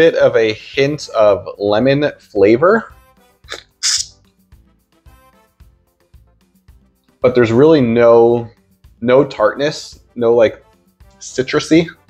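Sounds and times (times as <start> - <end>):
faint music with held notes: 0.0 - 12.0
breathy hiss from mouth: 3.5 - 4.2.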